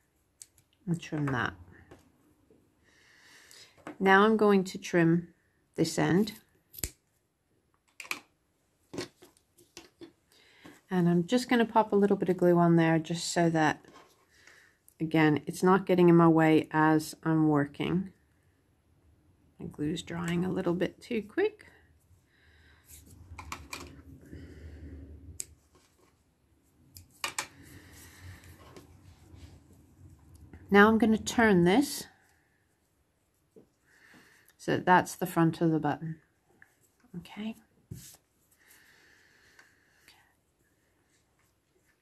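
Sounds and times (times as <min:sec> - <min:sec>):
scissors snipping: 0:06.7 - 0:07.0.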